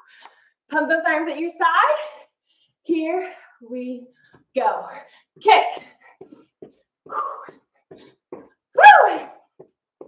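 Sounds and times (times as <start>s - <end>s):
woman shouting woo: 8.8s - 9.4s.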